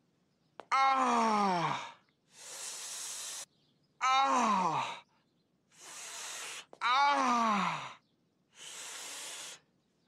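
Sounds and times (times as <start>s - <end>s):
breathy exhale: 8.6s - 9.6s.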